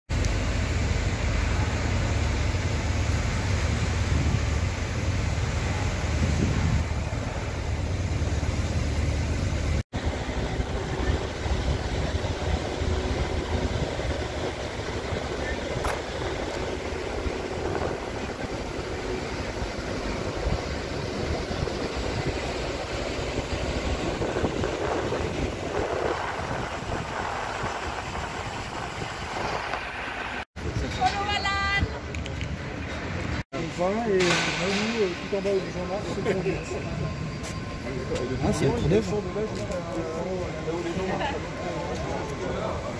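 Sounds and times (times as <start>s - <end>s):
rumble of engines and machinery: 0.1s - 42.9s.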